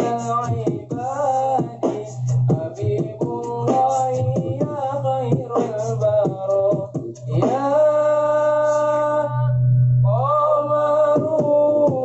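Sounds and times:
male group singing in harmony: 0.0 - 9.1
low bass hum: 0.0 - 11.0.

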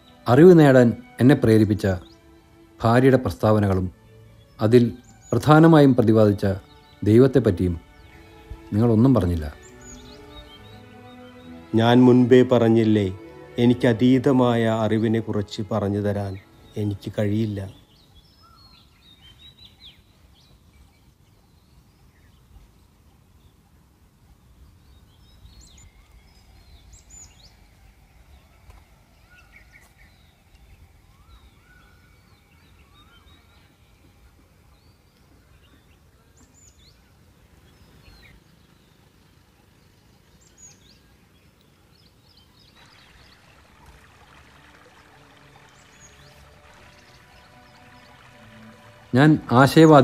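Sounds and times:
soft sustained music: 0.0 - 22.4, 24.6 - 50.0
bird chirps and calls: 4.3 - 12.0, 16.2 - 50.0.

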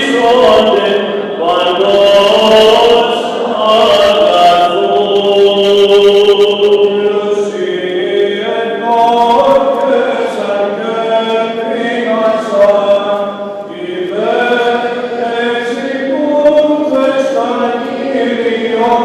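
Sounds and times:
voices chanting long held notes: 0.0 - 19.0.

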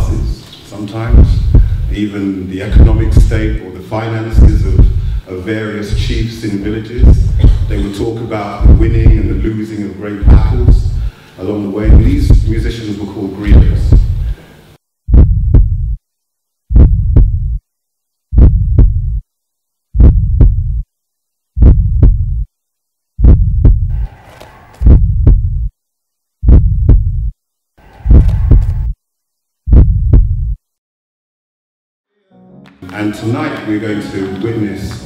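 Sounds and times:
heartbeat throb sound effect: 1.1 - 1.9, 2.7 - 3.6, 4.4 - 5.2, 7.0 - 7.8, 8.6 - 9.4, 10.3 - 11.1, 11.9 - 12.6, 13.5 - 14.3, 15.1 - 16.0, 16.7 - 17.6, 18.3 - 19.2, 20.0 - 20.8, 21.6 - 22.5, 23.2 - 24.0, 24.8 - 25.7, 26.4 - 27.3, 28.1 - 28.9, 29.7 - 30.6.

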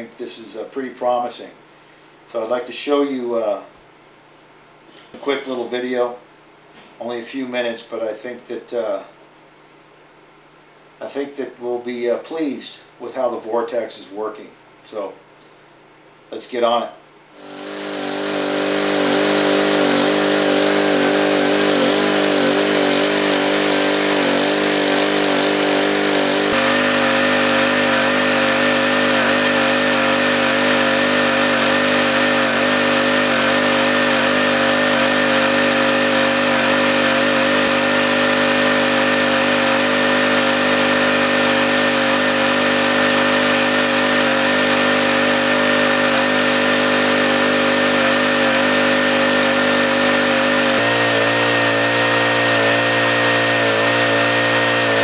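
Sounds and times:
small gasoline engine running: 17.4 - 55.0.

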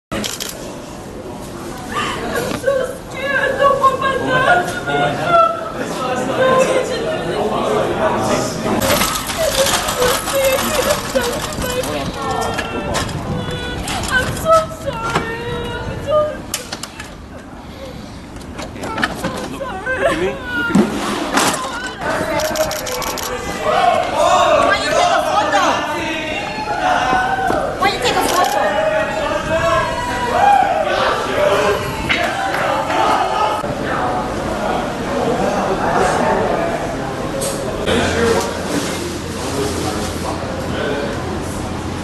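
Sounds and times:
voices: 0.1 - 42.0
young woman crying and whimpering: 19.1 - 20.8.

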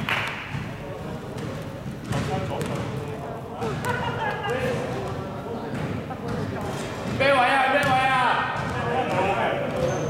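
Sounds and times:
players' voices: 0.1 - 10.0
basketball bouncing on court floor: 0.2 - 10.0.

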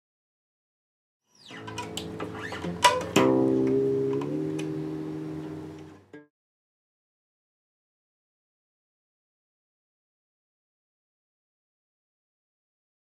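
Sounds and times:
guitar plucked notes and chord: 1.6 - 6.3.

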